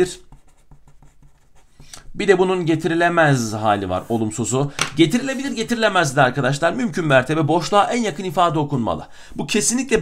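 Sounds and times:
marker pen writing on paper: 0.0s - 2.0s.

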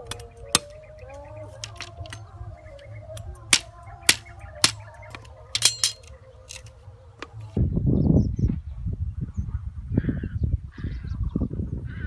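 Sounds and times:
cleaver chopping bamboo stems: 0.0s - 2.2s, 2.8s - 7.4s.

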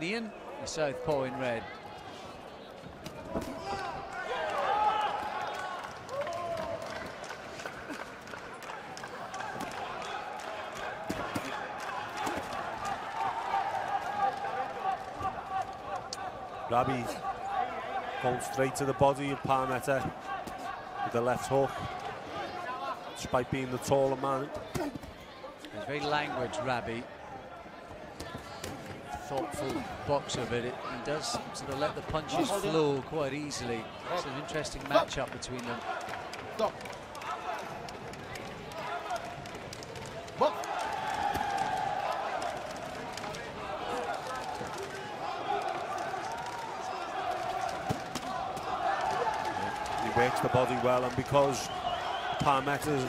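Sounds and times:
faint arena background noise: 0.0s - 53.0s.

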